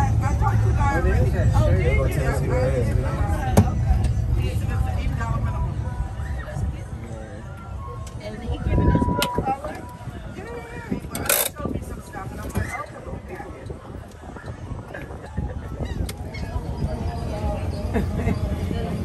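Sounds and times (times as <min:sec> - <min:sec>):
people's voices: 0:00.0 - 0:19.0
wind rumbling on microphone: 0:00.0 - 0:19.0.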